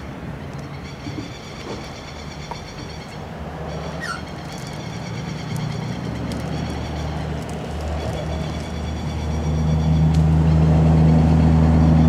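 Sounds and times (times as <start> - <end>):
falling bird chirp: 0.5 - 7.2.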